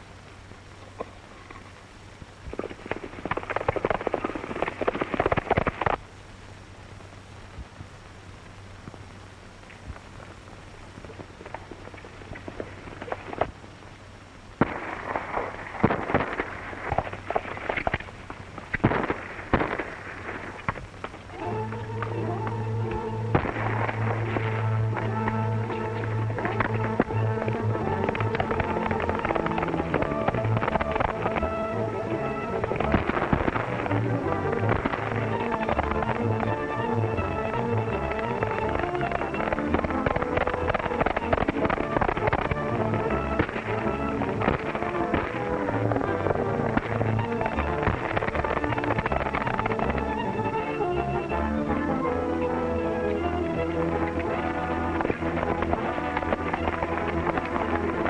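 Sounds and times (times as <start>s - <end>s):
gunshots: 14.6s - 18.0s, 18.6s - 20.8s, 22.9s - 50.2s
dramatic film score: 21.3s - 58.0s.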